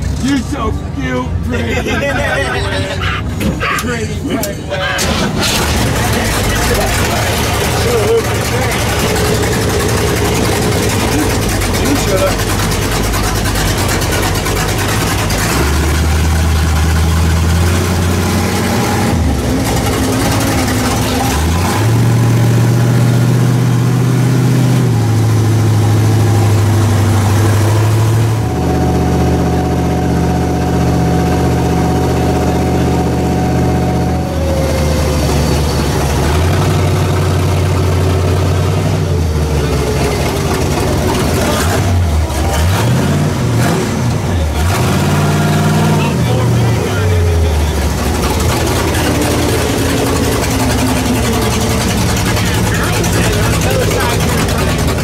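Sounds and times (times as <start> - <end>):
different steady engine: 0.0 - 55.0
large truck engine: 0.0 - 55.0.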